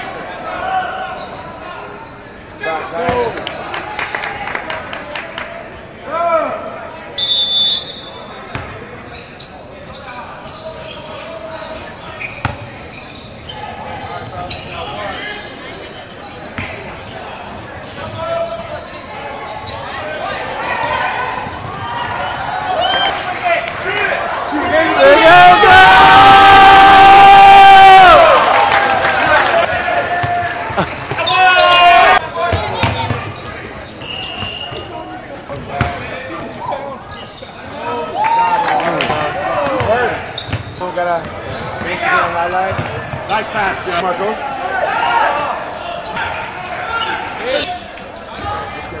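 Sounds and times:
voices echoing: 0:00.0 - 0:26.2, 0:28.1 - 0:49.0
loud sustained shout: 0:25.0 - 0:28.7.

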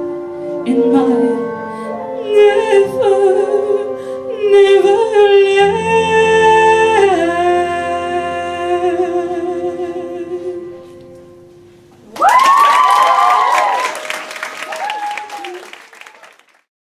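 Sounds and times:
audience whooping cheers: 0:12.1 - 0:16.6
audience applause: 0:12.1 - 0:16.7.

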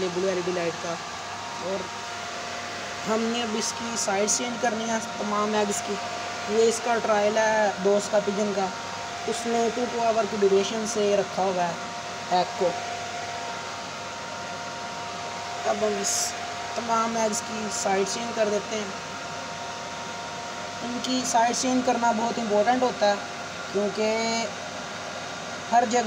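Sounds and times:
fan running with faint hum: 0:00.0 - 0:26.0.

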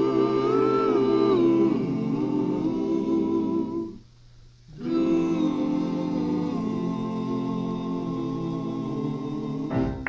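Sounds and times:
vocal chorus humming chords: 0:00.0 - 0:10.0.

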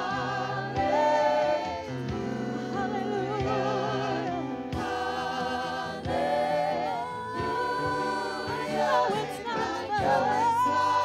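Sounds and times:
gospel choir singing: 0:00.0 - 0:11.0.

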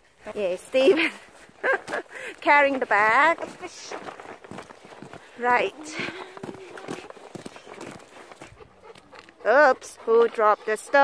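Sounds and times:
footsteps on gravel: 0:00.2 - 0:09.2.

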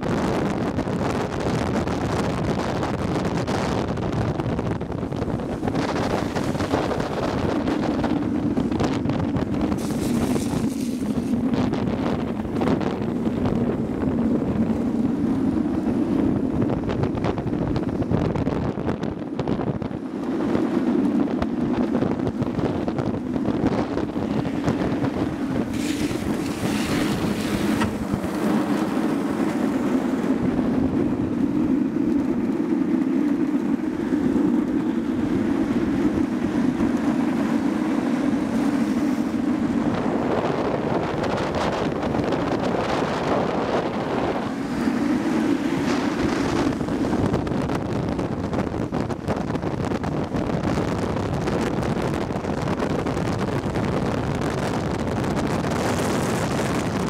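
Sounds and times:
longboard wheels rolling on asphalt: 0:00.0 - 0:57.0
wind rushing over microphone: 0:00.0 - 0:57.0.

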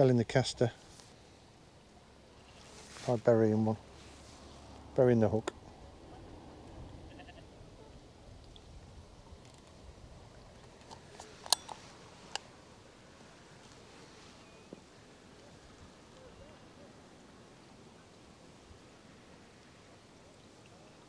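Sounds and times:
light wind: 0:00.0 - 0:21.0.

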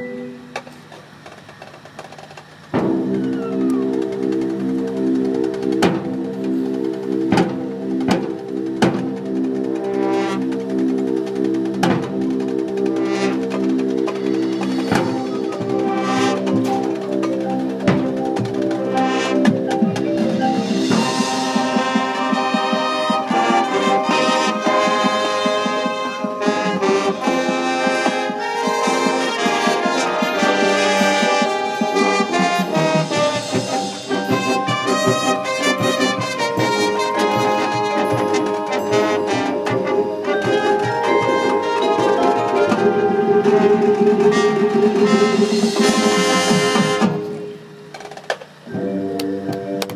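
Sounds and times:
marching band wind chord: 0:02.6 - 0:49.9
loud percussion hits: 0:02.7 - 0:49.9.

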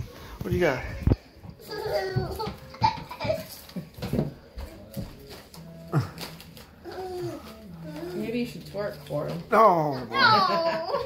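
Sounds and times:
children babbling and giggling: 0:01.6 - 0:03.8, 0:10.1 - 0:11.0.

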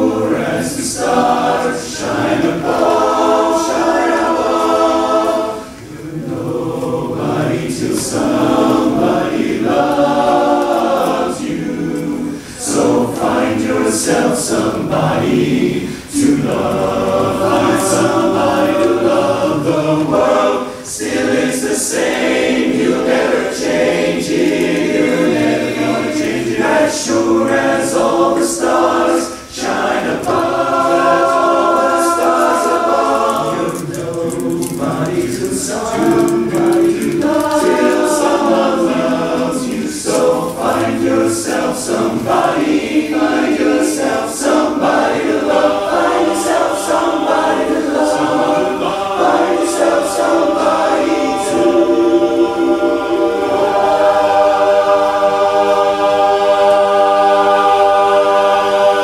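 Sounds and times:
men's barbershop chorus singing: 0:00.0 - 0:59.0.

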